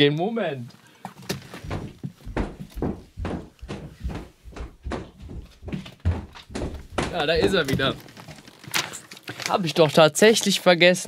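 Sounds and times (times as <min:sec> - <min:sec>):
knocks and thumps of moving: 0:01.3 - 0:08.6
person talking: 0:07.0 - 0:08.0.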